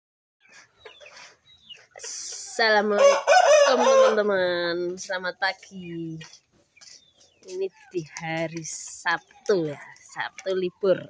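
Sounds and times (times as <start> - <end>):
chicken clucking: 0.4 - 11.0.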